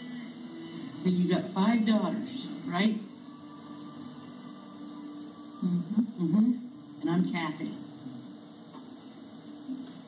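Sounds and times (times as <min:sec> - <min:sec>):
faint hiss: 0:00.0 - 0:10.0
steady low hum: 0:00.0 - 0:10.0.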